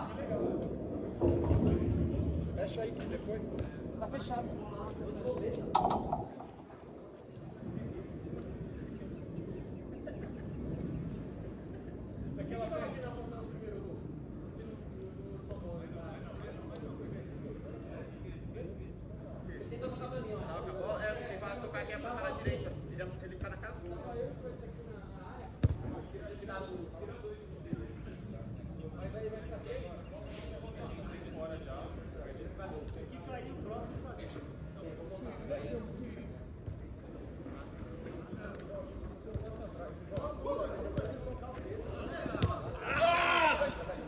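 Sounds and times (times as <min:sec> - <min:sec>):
players' voices: 0:00.0 - 0:44.0
football kick thud: 0:05.7 - 0:06.5, 0:42.3 - 0:42.7.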